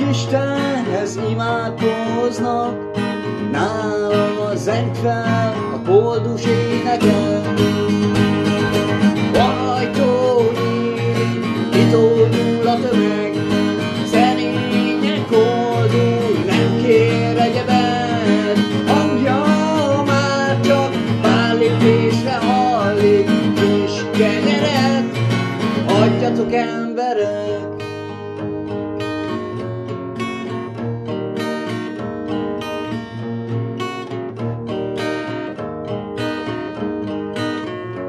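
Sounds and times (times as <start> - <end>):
man singing: 0.0 - 28.2
strummed acoustic guitar: 0.0 - 38.0.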